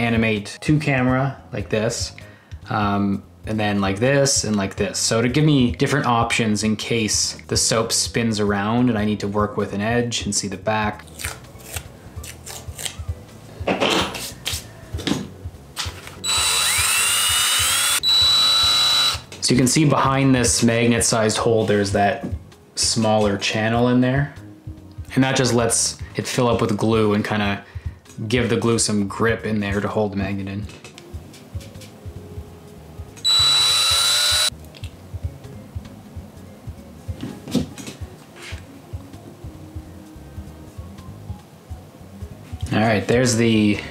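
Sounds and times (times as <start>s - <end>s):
cordless drill whining: 16.2s - 19.3s, 33.2s - 34.5s.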